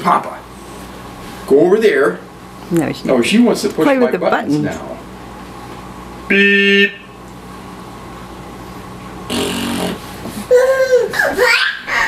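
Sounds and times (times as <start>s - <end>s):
children laughing: 10.4s - 12.0s.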